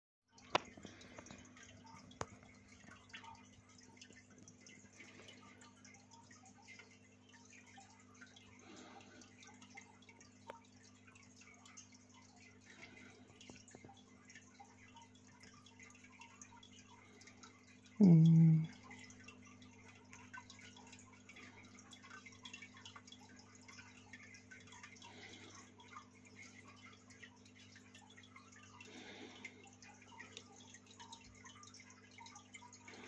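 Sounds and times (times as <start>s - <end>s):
water trickling: 0.3s - 33.0s
aquarium hum: 0.4s - 33.0s.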